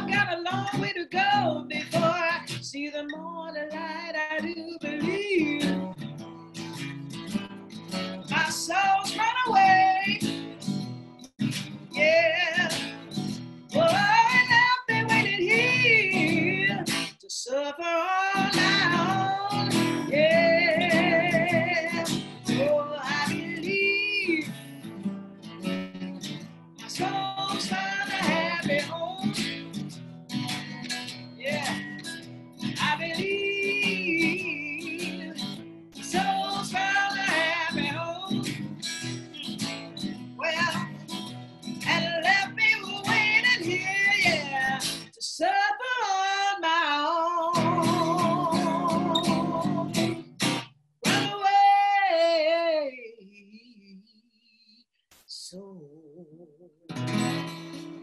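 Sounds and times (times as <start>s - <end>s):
woman singing blues: 0.0s - 6.6s, 7.9s - 11.1s, 11.7s - 25.8s, 26.7s - 29.8s, 30.4s - 50.3s, 51.0s - 58.0s
strummed acoustic guitar: 0.0s - 17.2s, 17.8s - 45.2s, 46.2s - 52.9s, 56.9s - 58.0s.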